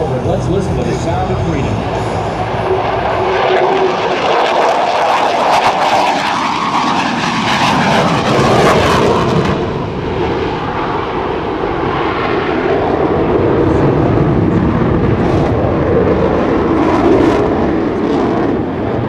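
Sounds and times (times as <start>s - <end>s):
jet roar with crackle: 2.6s - 11.2s.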